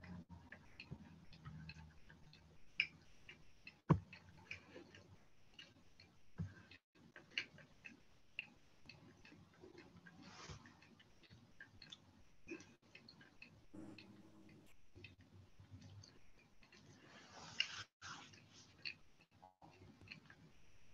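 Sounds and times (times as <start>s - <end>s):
small clicks and ticks: 0.0s - 20.9s.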